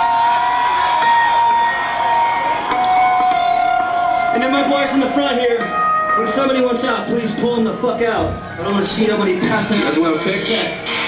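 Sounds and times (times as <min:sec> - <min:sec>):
concert crowd noise: 0:00.0 - 0:11.0
steady high tone: 0:01.0 - 0:11.0.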